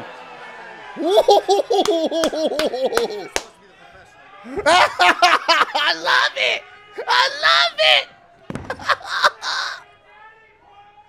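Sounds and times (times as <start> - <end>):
man laughing hard: 1.0 - 3.4, 4.5 - 8.0, 8.7 - 9.8
sharp claps: 1.8 - 3.6.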